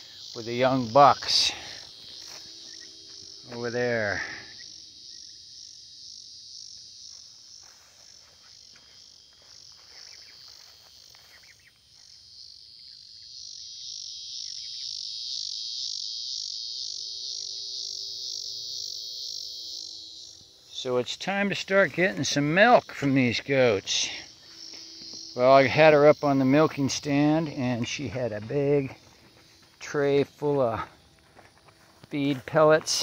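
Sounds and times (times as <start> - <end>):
insects trilling: 0.0 - 33.0.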